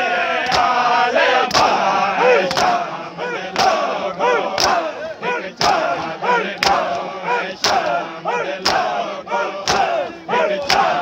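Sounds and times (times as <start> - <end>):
crowd chanting: 0.0 - 11.0
men slapping chests: 0.4 - 11.0.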